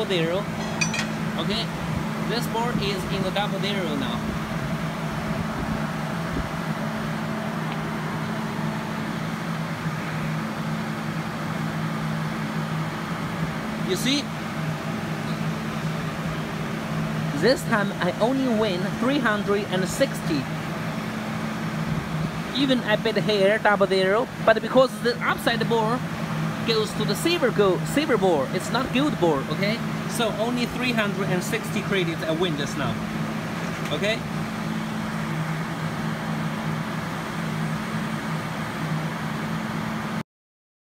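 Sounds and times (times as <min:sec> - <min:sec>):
voice: 0:00.0 - 0:00.5, 0:01.4 - 0:01.7, 0:02.3 - 0:04.2, 0:13.9 - 0:14.3, 0:17.3 - 0:20.5, 0:22.5 - 0:26.0, 0:26.7 - 0:33.0, 0:33.8 - 0:34.2
low machine hum: 0:00.0 - 0:40.2.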